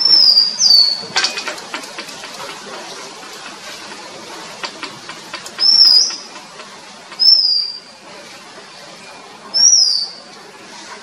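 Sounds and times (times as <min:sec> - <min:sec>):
bird ticks: 0:00.0 - 0:07.7
bird whistled note: 0:05.6 - 0:06.2, 0:07.2 - 0:07.9, 0:09.5 - 0:10.2.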